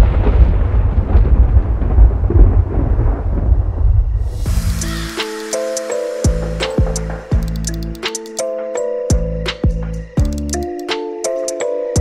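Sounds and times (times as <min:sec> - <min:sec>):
thunder-like rumble: 0:00.0 - 0:05.2
music with held notes: 0:04.5 - 0:12.0.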